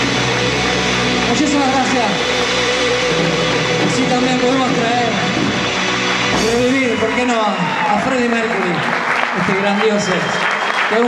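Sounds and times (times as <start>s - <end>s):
distorted electric guitar bends: 0.0s - 8.6s
live rock band: 0.0s - 9.2s.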